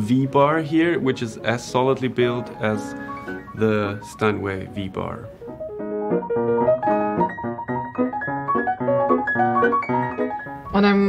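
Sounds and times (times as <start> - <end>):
upright piano playing: 0.0 - 11.0.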